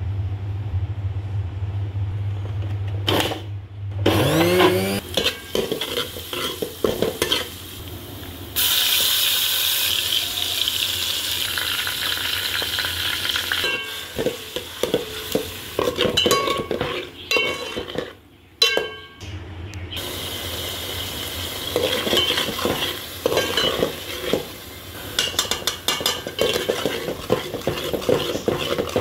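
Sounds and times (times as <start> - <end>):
rising whine: 0.0 - 5.0
low hum: 0.0 - 5.3
ladle scraping and clicking on pan: 5.0 - 7.6, 13.5 - 18.9, 21.7 - 24.5, 25.1 - 29.0
garlic sizzling in hot oil: 5.0 - 18.1, 20.0 - 29.0.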